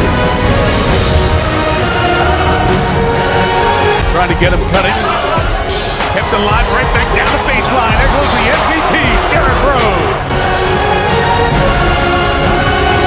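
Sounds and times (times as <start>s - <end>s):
music: 0.0s - 13.0s.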